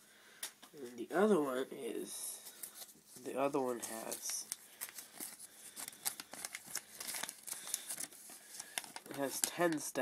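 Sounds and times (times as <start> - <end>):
paper booklet rustling: 2.4 - 10.0.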